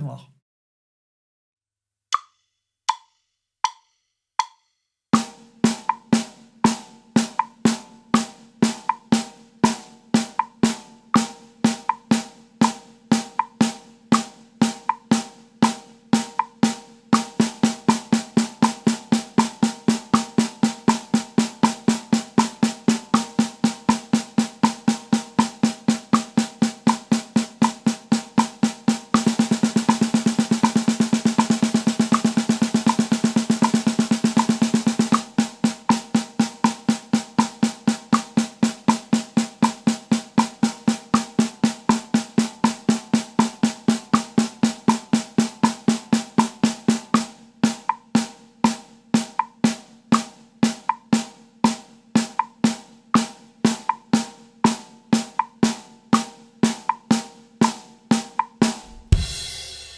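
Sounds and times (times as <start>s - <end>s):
snare drum played with sticks: 4.4s - 4.6s, 5.2s - 59.9s.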